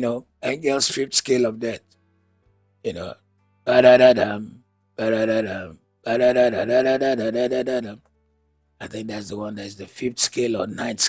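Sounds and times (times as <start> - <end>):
man singing wordless tune: 2.9 - 8.1.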